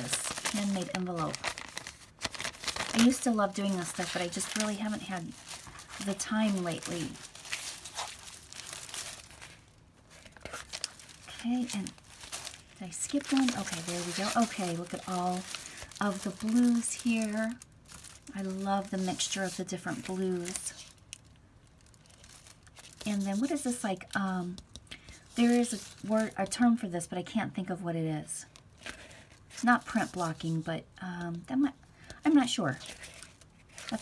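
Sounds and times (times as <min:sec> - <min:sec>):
paper pages rustling and crinkling: 0:00.0 - 0:21.0, 0:21.8 - 0:26.7, 0:28.7 - 0:30.7, 0:32.3 - 0:34.0.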